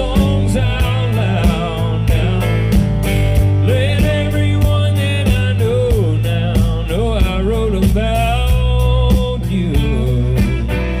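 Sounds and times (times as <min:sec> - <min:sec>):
country band playing: 0:00.0 - 0:11.0.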